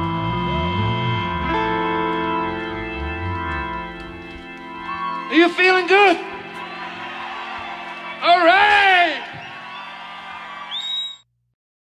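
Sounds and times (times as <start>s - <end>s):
rock band sustained tones: 0.0s - 10.6s
audience member whistling: 7.5s - 11.2s.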